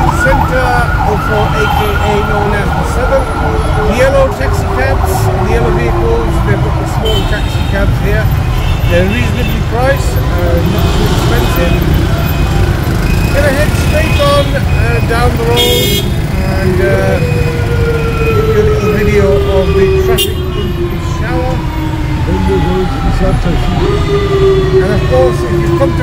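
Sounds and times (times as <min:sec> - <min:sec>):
car horns tooting: 0:00.0 - 0:04.2, 0:06.8 - 0:18.4, 0:19.2 - 0:21.0
people's voices: 0:00.0 - 0:26.0
traffic rumble and road noise: 0:00.0 - 0:26.0.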